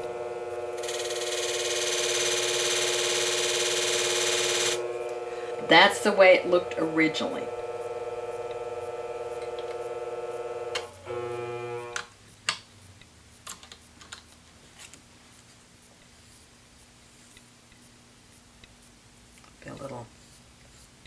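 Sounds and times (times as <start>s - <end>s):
electric motor humming: 0.0s - 12.1s
motor winding down: 0.0s - 12.1s.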